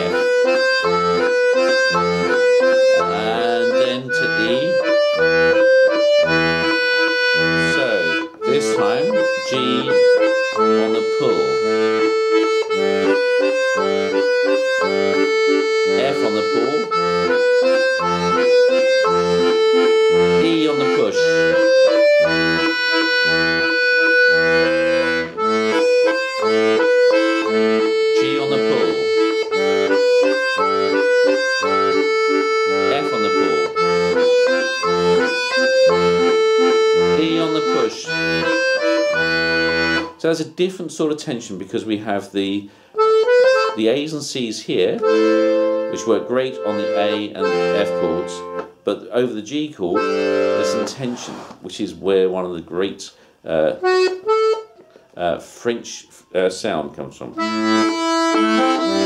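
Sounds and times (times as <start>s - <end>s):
button accordion playing waltz: 0.0s - 40.3s, 43.0s - 44.1s, 44.7s - 48.9s, 49.8s - 51.6s, 52.8s - 55.4s, 57.4s - 59.0s.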